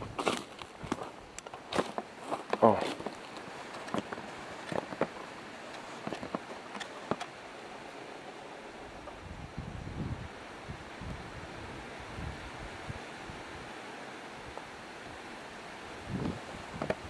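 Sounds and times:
wind buffeting microphone: 0:08.8 - 0:13.8, 0:15.8 - 0:17.0.

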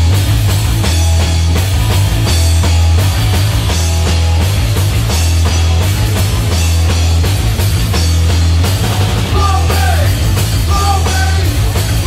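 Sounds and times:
bass guitar: 0:00.0 - 0:12.0
electric guitar: 0:00.0 - 0:12.0
steady drum beat: 0:00.0 - 0:12.0.

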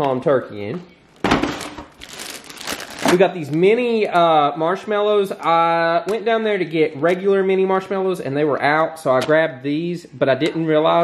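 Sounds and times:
plastic bag crinkling: 0:01.1 - 0:03.8
aluminium foil pan crinkling: 0:01.2 - 0:03.6.

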